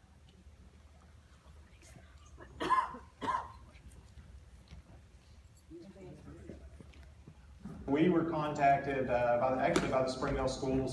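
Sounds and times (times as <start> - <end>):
person coughing: 2.5 - 3.6.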